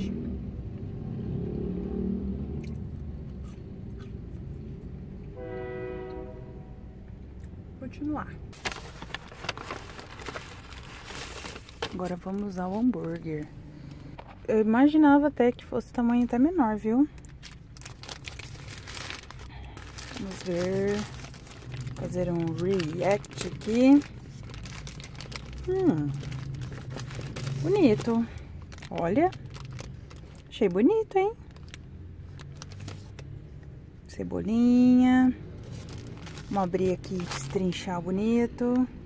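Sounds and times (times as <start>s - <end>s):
train horn blast: 5.3s - 7.1s
steady low rumble: 6.7s - 34.1s
paper wrapper crinkling: 8.5s - 14.5s, 17.1s - 33.3s, 35.6s - 37.8s.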